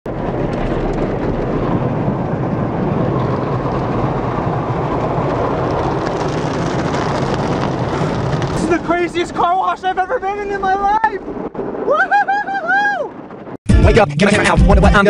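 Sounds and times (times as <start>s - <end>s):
water spray on car: 0.1s - 9.8s.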